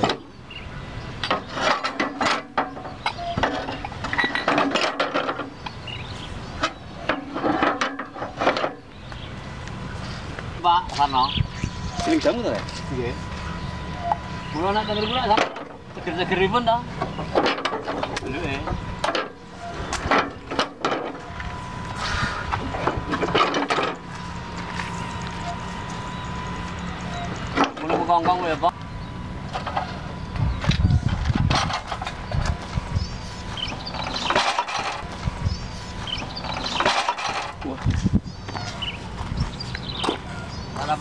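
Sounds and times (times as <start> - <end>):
heavy iron parts knocking: 0.0 - 0.3, 1.2 - 9.2, 12.0 - 21.6, 22.4 - 28.8, 29.4 - 41.0
people talking: 10.6 - 13.5, 14.5 - 17.0, 18.1 - 18.8, 27.6 - 28.8, 37.6 - 38.0, 40.8 - 41.0.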